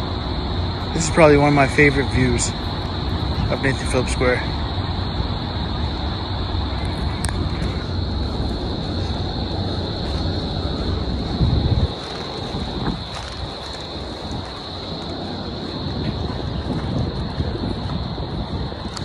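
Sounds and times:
steady high-pitched hiss: 0.0s - 19.0s
wind buffeting microphone: 0.0s - 19.0s.

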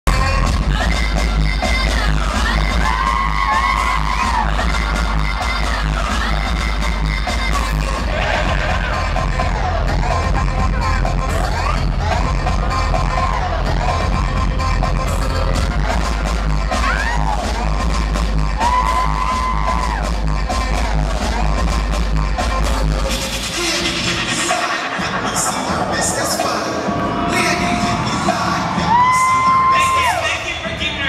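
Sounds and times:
heavy bass beat: 0.0s - 31.0s
gliding synthesizer lines: 23.1s - 29.7s.

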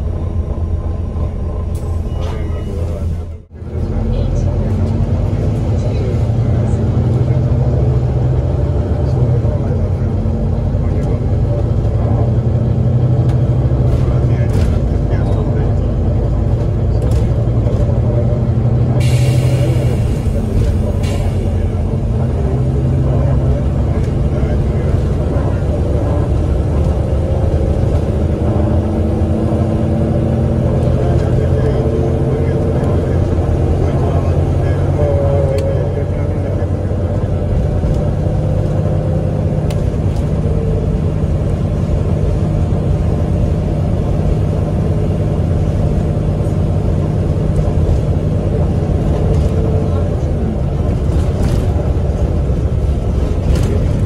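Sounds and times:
bus diesel engine drone: 0.0s - 54.0s.

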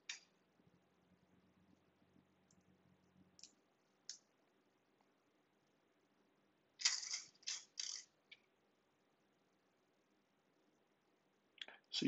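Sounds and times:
small metal parts clicking: 6.8s - 8.1s.

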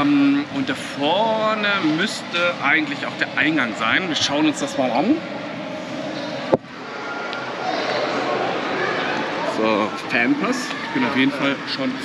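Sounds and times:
indoor hall ambient noise: 0.0s - 12.0s.

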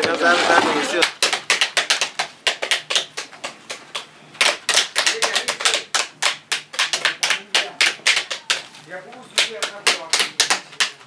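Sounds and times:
hands smacking pomegranates: 9.4s - 11.0s.

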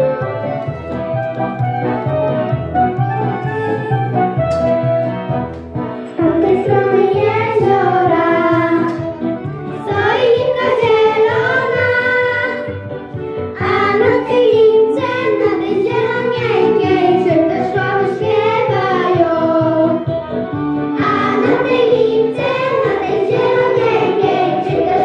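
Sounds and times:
musical accompaniment: 0.0s - 25.0s
girls singing together: 9.8s - 12.7s, 21.0s - 25.0s.

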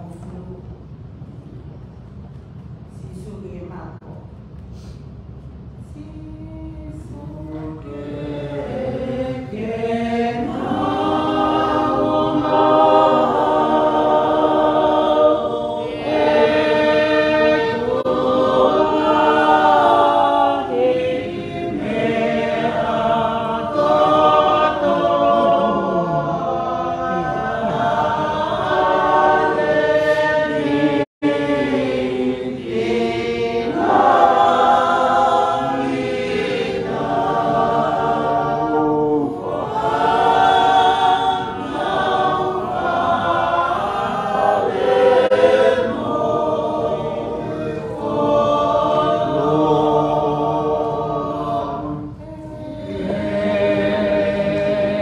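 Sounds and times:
church choir singing a hymn: 6.4s - 55.0s.

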